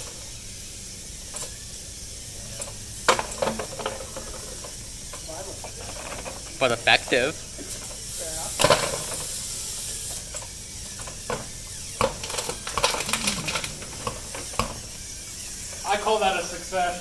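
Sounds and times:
robot electric motors running: 0.0 - 17.0
steady high hiss: 0.0 - 17.0
sharp clicks and knocks: 10.2 - 14.8.

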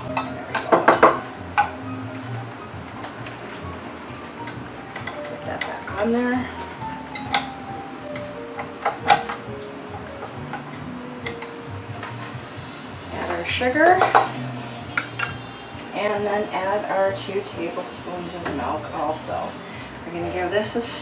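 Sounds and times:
soft background music: 0.0 - 21.0
metal bowl and whisk clinking: 7.0 - 7.6.

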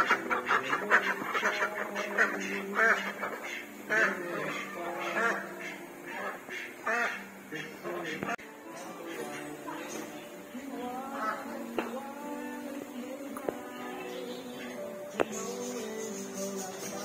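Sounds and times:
ducks quacking: 0.0 - 12.6, 13.5 - 17.0.

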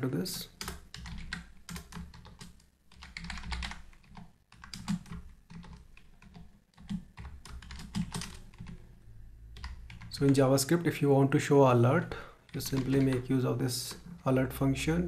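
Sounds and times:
typing on a computer keyboard: 0.4 - 8.8, 9.6 - 10.7, 12.4 - 13.3.

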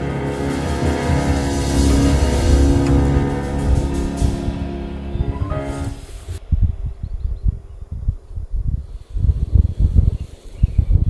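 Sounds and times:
background music: 0.0 - 6.4
wind buffeting microphone: 3.7 - 11.0.

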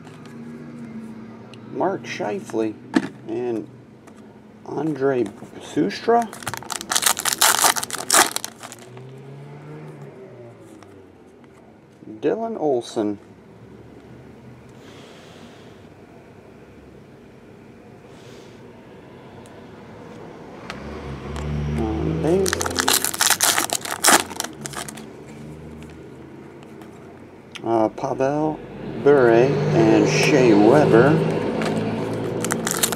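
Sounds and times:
cards rustling and ticking: 6.1 - 8.9, 22.4 - 25.1, 31.6 - 32.9
foil wrapper tearing and crinkling: 6.2 - 8.9, 22.4 - 25.1, 32.3 - 32.9.

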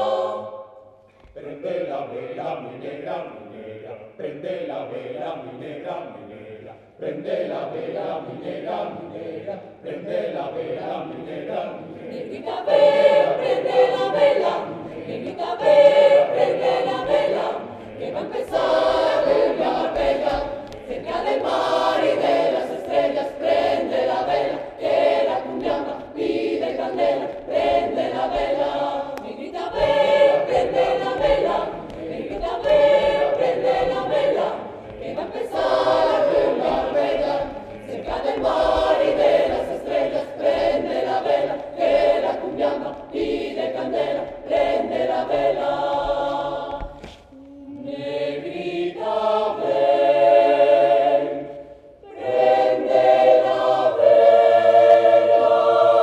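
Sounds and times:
mixed choir singing a cappella: 0.0 - 56.0.

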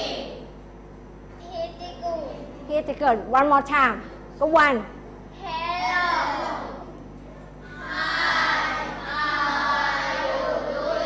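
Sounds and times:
children saying hi in chorus: 0.0 - 0.5, 5.3 - 7.0, 7.6 - 11.0.

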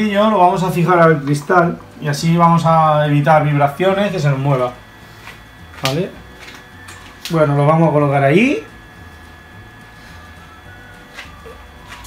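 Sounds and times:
aquarium pump hum: 0.0 - 12.0.

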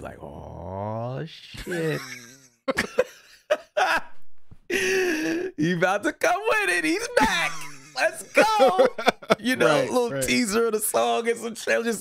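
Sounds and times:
men laughing: 1.6 - 5.5, 6.9 - 10.0.

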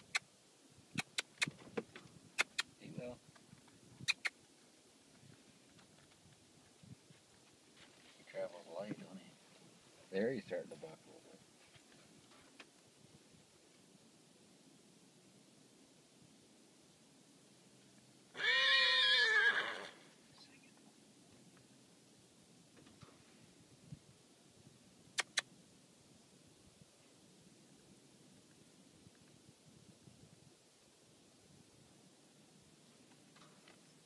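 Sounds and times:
mouth clicks: 0.0 - 0.3, 0.9 - 1.6, 2.4 - 2.8, 4.0 - 4.4, 25.1 - 25.5
faint outdoor background: 0.0 - 34.0
horse whinnying: 18.3 - 20.1.

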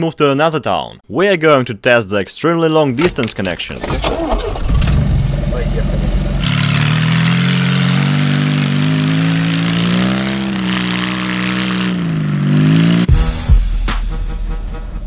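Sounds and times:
car engine revving: 4.4 - 13.1.

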